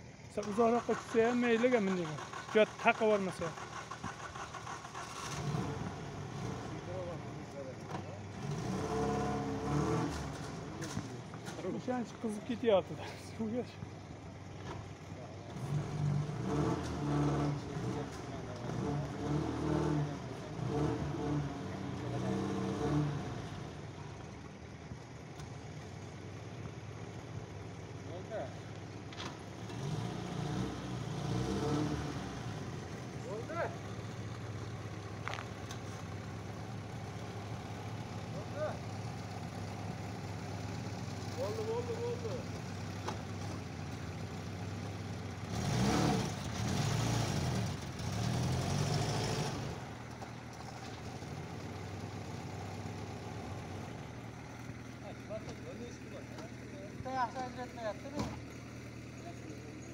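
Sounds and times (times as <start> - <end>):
car engine revving under load: 0.0 - 12.6, 13.8 - 59.9.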